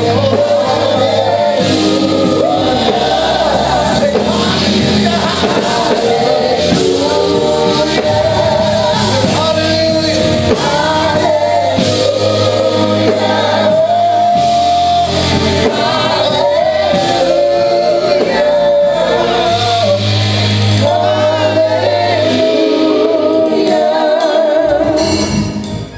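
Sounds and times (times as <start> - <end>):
gospel group singing: 0.0 - 25.9
keyboard accompaniment: 0.0 - 25.9.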